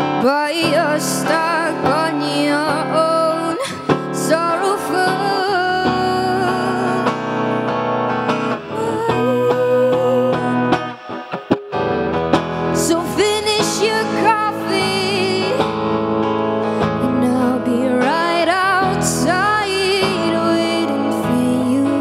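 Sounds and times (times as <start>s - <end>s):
woman singing with vibrato: 0.0s - 11.3s, 12.8s - 16.1s, 16.7s - 22.0s
electric guitar: 0.0s - 22.0s.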